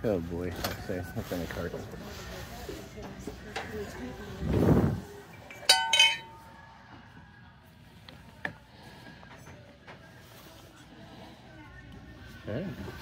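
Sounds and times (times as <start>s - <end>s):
ceramic mugs clinking: 5.4s - 6.4s.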